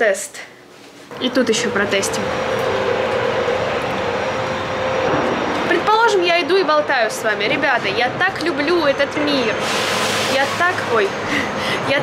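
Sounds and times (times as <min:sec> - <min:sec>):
distant traffic hum: 0:01.1 - 0:12.0.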